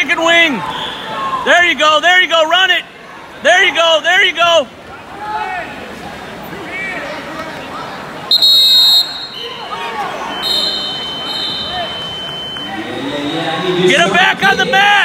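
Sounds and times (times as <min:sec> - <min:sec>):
background voices in gym hall: 0:00.0 - 0:15.0
shrill steady signal tone: 0:10.3 - 0:13.9.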